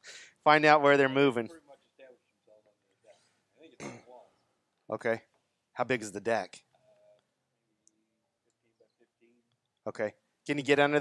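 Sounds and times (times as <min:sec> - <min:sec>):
faint distant voice: 0:01.3 - 0:04.3.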